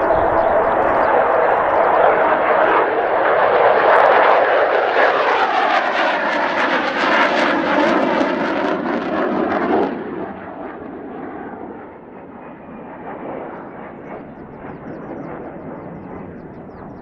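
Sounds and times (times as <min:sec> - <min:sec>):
jet engine passing low: 0:00.0 - 0:17.0.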